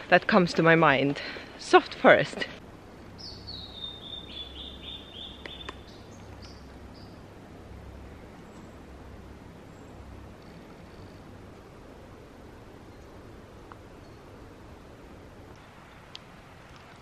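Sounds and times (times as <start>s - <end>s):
low outdoor rumble: 0.0s - 17.0s
songbird calling high notes: 3.2s - 7.2s.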